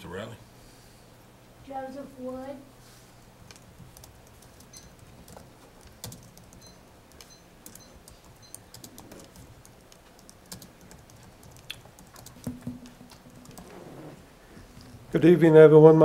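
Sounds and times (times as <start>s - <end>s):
typing on computer keyboard: 3.4s - 13.7s.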